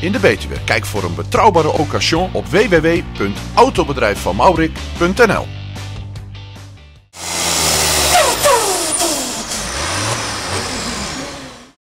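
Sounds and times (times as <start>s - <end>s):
music: 0.0s - 7.2s
loud tractor engine running hard: 7.2s - 11.8s.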